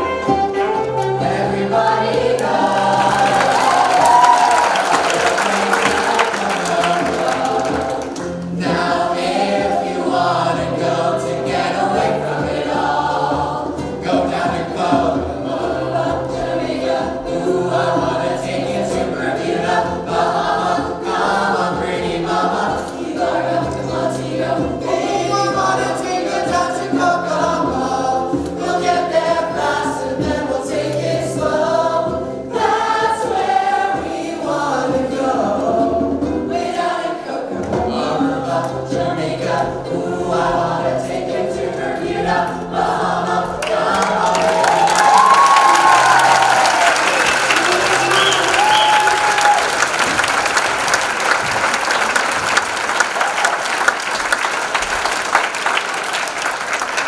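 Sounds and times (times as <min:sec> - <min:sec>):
instrumental accompaniment: 0:00.0 - 0:53.1
cast singing in chorus: 0:01.0 - 0:49.9.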